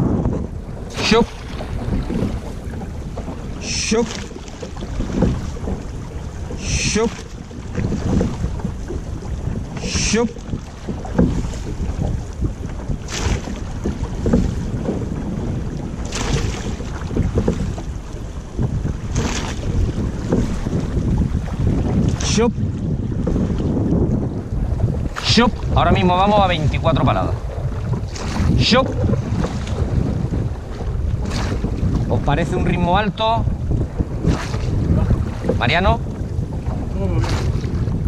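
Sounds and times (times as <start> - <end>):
water rushing along hull: 0.0 - 38.0
wind buffeting microphone: 0.0 - 38.0.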